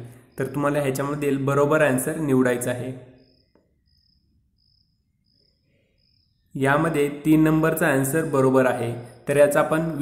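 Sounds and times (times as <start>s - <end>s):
faint insect chirping: 0.0s - 10.0s.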